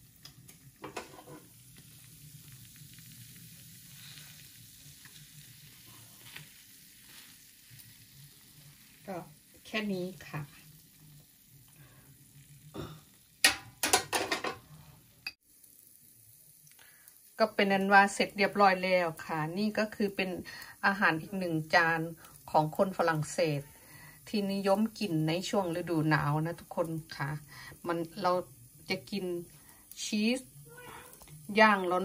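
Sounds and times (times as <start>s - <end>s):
cheese sizzling in a pan: 0.0s - 32.0s.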